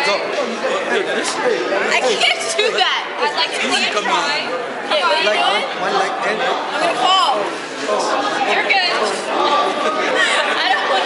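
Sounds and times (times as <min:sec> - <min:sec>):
babble of chatter: 0:00.0 - 0:11.0.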